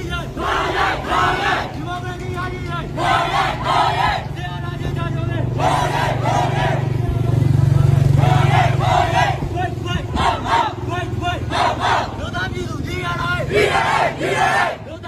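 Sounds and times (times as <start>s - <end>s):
protesters shouting slogans: 0.0s - 15.0s
vehicle engine idling: 0.0s - 15.0s.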